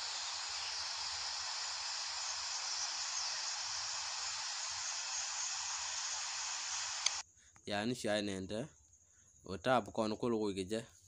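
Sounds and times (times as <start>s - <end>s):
steady static hiss: 0.0s - 7.2s.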